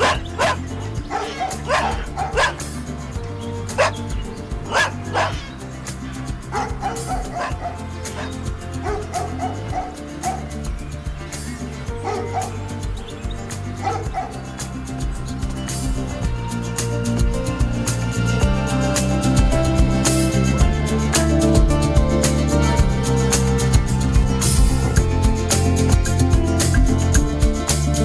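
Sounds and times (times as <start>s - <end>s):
dog yipping: 0.0s - 2.6s, 3.8s - 4.0s, 4.7s - 5.6s, 6.5s - 10.5s, 12.0s - 12.6s, 13.8s - 14.4s
background music: 0.0s - 28.0s.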